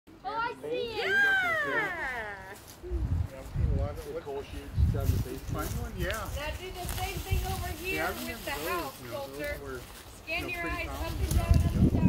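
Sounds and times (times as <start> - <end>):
child calling out: 0.8 - 2.6.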